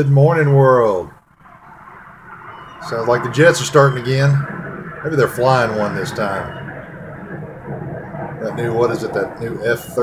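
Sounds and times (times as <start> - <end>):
distant jet aircraft rumble: 0.1 - 10.0.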